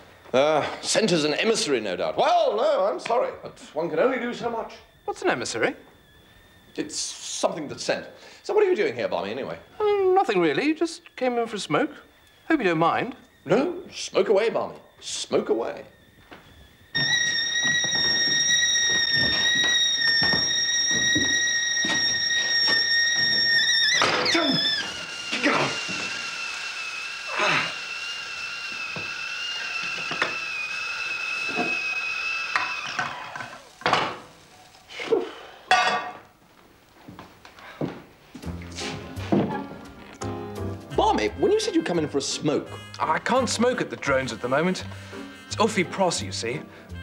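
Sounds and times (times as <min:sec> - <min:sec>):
kettle whistling: 0:00.0 - 0:36.1, 0:38.4 - 0:47.0.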